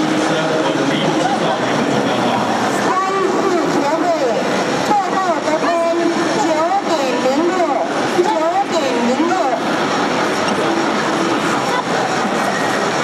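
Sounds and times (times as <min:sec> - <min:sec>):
crowd noise in a hall: 0:00.0 - 0:13.0
voices shouting and calling out: 0:00.7 - 0:13.0.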